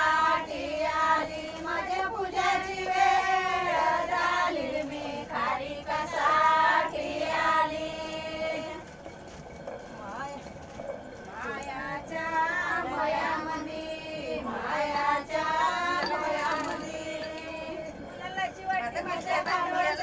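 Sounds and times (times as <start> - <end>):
women singing folk song: 0.0 - 9.0, 11.2 - 20.0.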